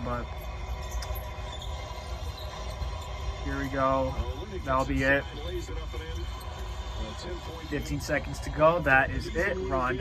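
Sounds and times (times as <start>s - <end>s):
arena noise from television: 0.0s - 10.0s.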